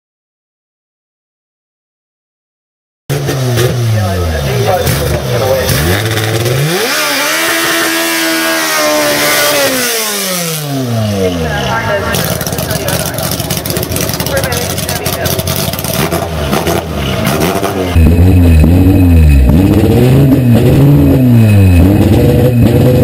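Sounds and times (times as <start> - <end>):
car engine revving: 3.1 - 23.0
engine running rough: 3.1 - 23.0.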